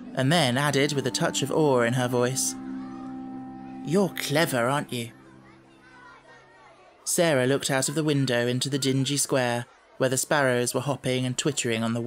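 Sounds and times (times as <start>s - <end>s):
man reading aloud: 0.1s - 2.6s, 3.8s - 5.1s, 7.1s - 12.0s.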